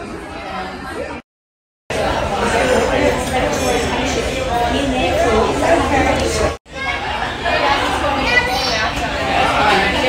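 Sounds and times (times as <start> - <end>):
people talking and chattering: 0.0 - 1.2, 1.9 - 10.0.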